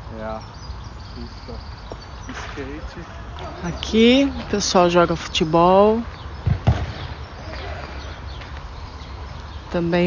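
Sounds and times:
dull thuds: 6.4 - 7.2.

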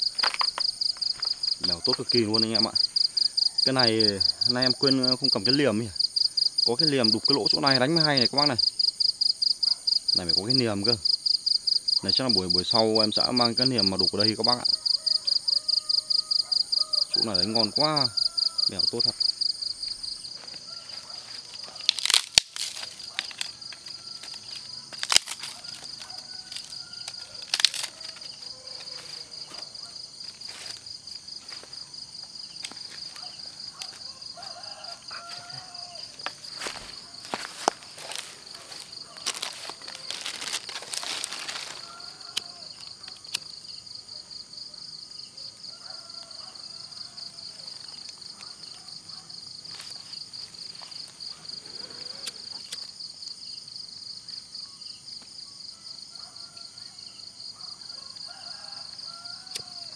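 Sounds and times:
dry palm fronds rustling: 0.0 - 4.0, 19.2 - 43.2, 49.6 - 51.3
night insects trilling: 0.0 - 59.9.

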